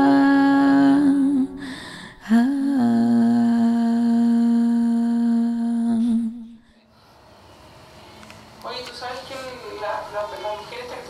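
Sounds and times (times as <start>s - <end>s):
voice humming long notes: 2.2s - 6.6s.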